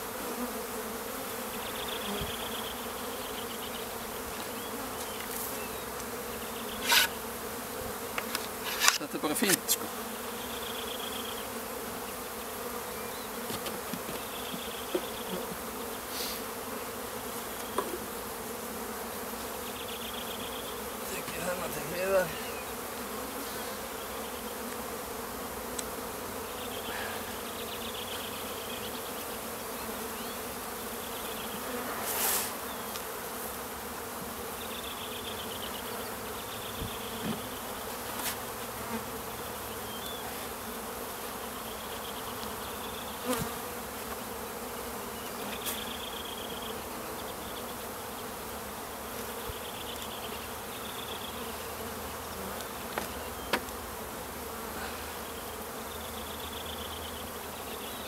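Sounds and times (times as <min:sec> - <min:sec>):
bees buzzing: 0:00.0 - 0:58.0
knocks on wooden hive boxes: 0:13.4 - 0:15.2, 0:17.6 - 0:18.2, 0:36.8 - 0:37.5, 0:52.9 - 0:53.8.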